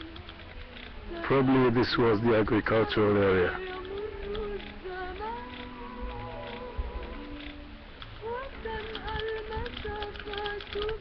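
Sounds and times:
insect buzzing: 0:03.4 - 0:11.0.

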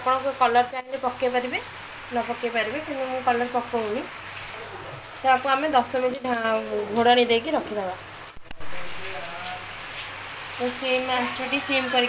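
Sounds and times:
steady hiss: 0:08.1 - 0:12.0.

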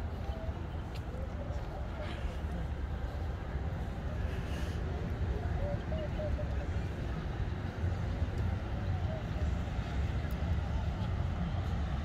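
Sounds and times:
faint distant voices: 0:00.0 - 0:12.0
steady low rumble: 0:00.0 - 0:12.0.

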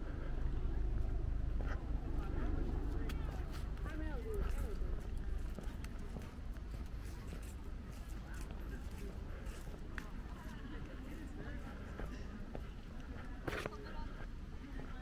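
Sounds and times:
steady low rumble: 0:00.0 - 0:14.7
people talking: 0:00.0 - 0:15.0
footsteps on stone paving: 0:01.0 - 0:15.0.

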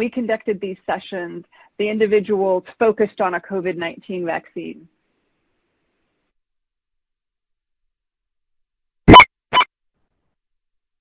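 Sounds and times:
electronic blips: 0:09.1 - 0:09.7.

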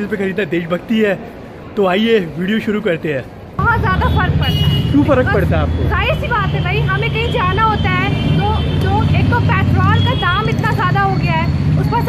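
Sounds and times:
road traffic rumble: 0:00.0 - 0:12.0
woman talking: 0:03.6 - 0:04.6, 0:05.9 - 0:12.0.

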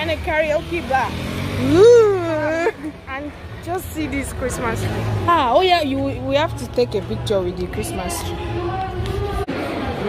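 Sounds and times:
low hum of traffic: 0:00.0 - 0:10.0
woman's drawn-out exclamation: 0:01.6 - 0:02.8.

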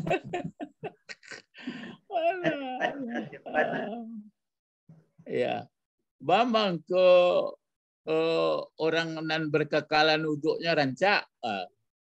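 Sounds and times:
man laughing: 0:00.0 - 0:01.5.

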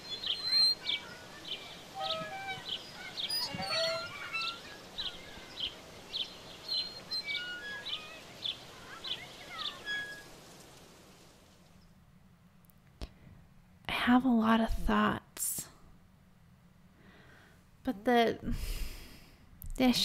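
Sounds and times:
birds singing: 0:00.0 - 0:10.4
bird's short high chirp: 0:06.7 - 0:10.3.

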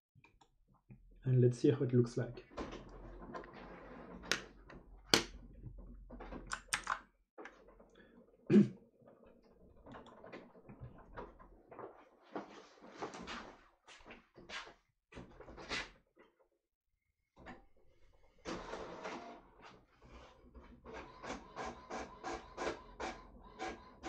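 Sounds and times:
knocks and clicks: 0:02.4 - 0:07.9.

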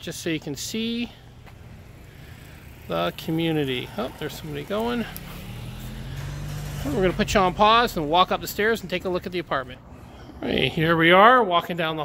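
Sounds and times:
car driving by: 0:01.4 - 0:11.0.

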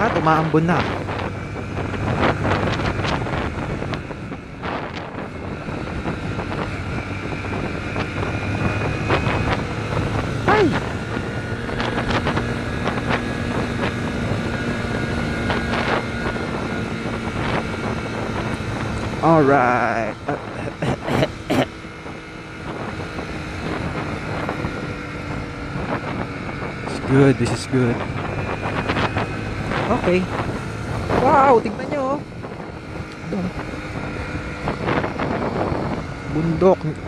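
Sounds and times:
motorcycle engine running: 0:00.0 - 0:37.0
wind noise on microphone: 0:00.0 - 0:37.0.

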